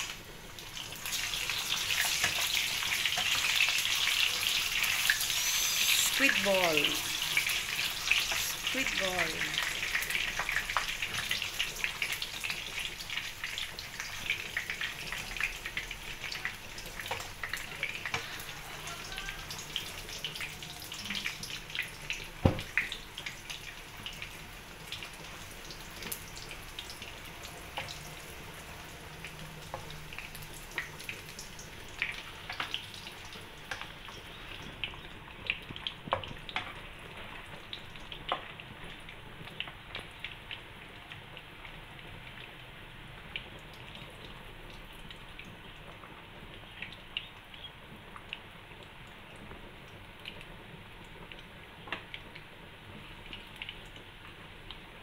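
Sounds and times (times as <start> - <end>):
frying hiss: 0.0 - 55.0
oil popping and crackling: 0.0 - 55.0.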